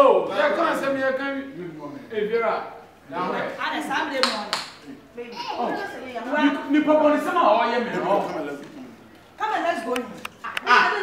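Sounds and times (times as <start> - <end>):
voices arguing: 0.0 - 11.0
sharp hand claps: 4.2 - 4.8.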